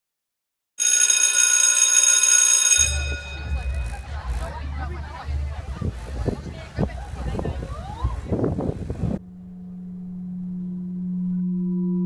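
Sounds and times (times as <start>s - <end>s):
electric bell ringing: 0.8s - 4.4s.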